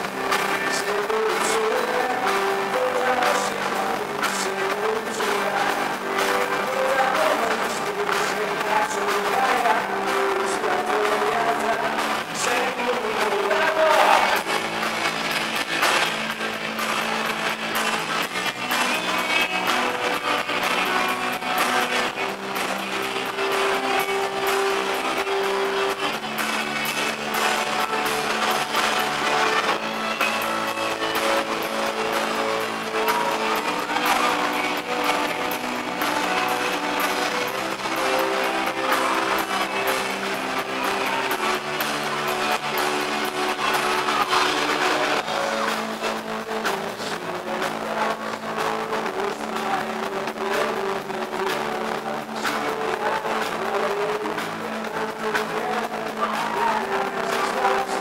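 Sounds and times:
held guitar chords: 0.0s - 58.0s
live rock band playing: 0.0s - 58.0s
man singing: 0.0s - 58.0s.

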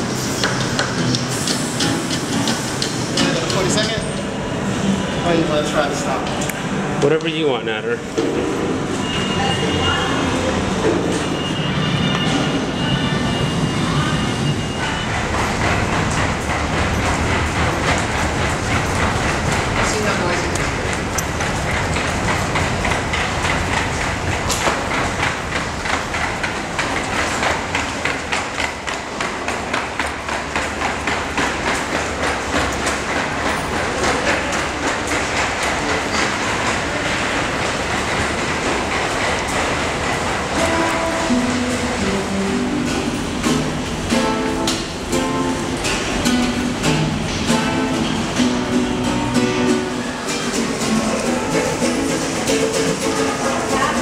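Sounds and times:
subway train rumbling: 0.0s - 54.0s
train wheels clattering: 0.0s - 54.0s
plucked acoustic guitar: 0.5s - 3.7s, 40.6s - 54.0s.

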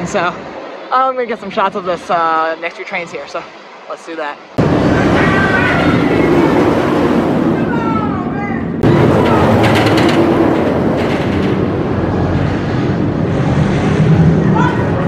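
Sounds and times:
roller coaster rumbling on track: 4.6s - 15.0s.

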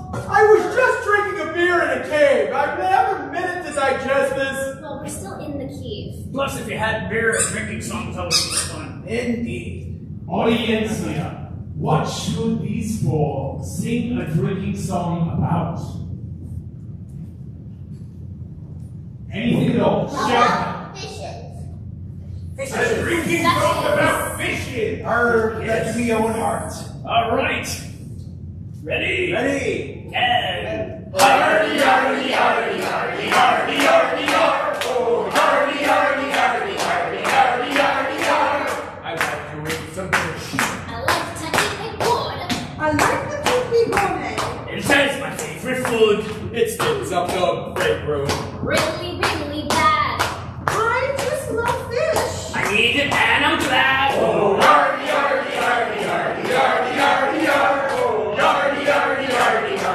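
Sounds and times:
low rumble of room noise: 0.0s - 59.9s
people singing: 22.6s - 24.6s, 31.2s - 39.0s, 54.0s - 59.9s
hands clapping in a steady beat: 31.2s - 59.9s.

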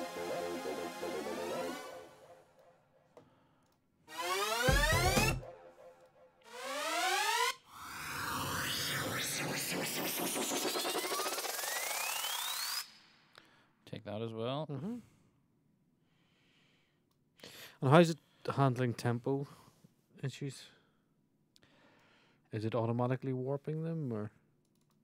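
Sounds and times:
synthesized rising sweeps: 0.0s - 2.6s, 4.1s - 13.2s.

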